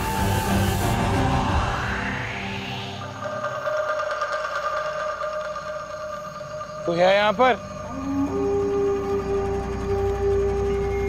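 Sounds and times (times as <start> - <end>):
rising pitched call: 0.0 - 11.0
sustained drone tones: 0.0 - 11.0
fast insect-like trill: 2.6 - 11.0.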